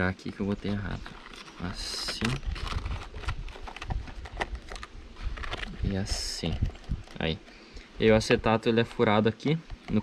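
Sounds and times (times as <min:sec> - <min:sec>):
plastic sheet crackling and rustling: 0:00.7 - 0:07.5.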